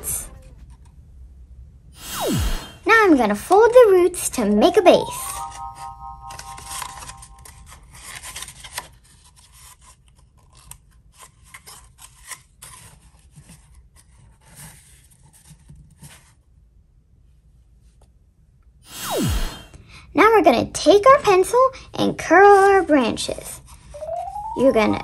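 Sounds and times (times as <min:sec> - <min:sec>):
electronic chord: 0:05.1 - 0:07.6, 0:24.0 - 0:25.0.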